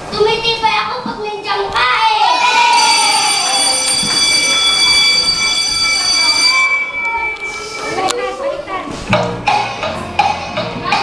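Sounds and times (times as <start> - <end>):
children's voices: 0.0 - 11.0
steady high-pitched tone: 2.5 - 8.7.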